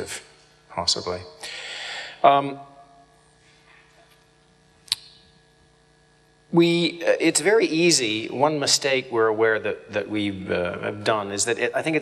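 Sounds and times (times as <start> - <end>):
electrical mains hum: 0.0 - 12.0
sharp click: 4.8 - 5.2.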